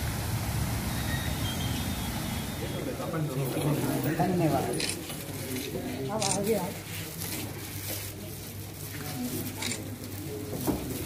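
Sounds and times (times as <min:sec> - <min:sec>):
outdoor rushing noise: 0:00.0 - 0:03.5.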